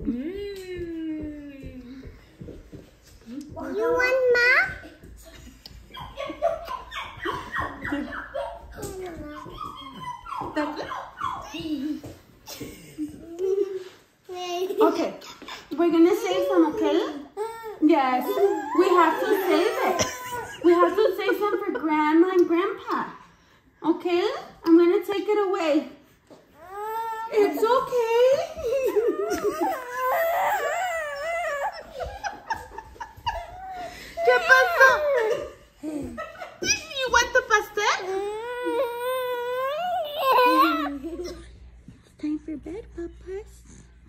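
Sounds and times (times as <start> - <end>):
baby whimpering and crying: 17.3 - 20.4, 26.6 - 27.6, 28.6 - 32.0, 38.0 - 41.0.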